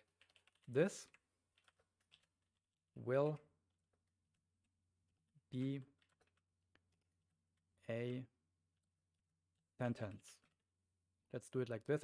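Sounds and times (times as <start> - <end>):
faint keyboard typing: 0.0 - 4.4, 5.5 - 7.4.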